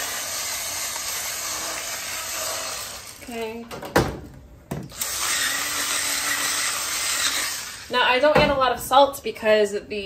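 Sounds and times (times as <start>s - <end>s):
electric pepper grinder whirring: 0.0s - 3.4s, 4.9s - 7.9s.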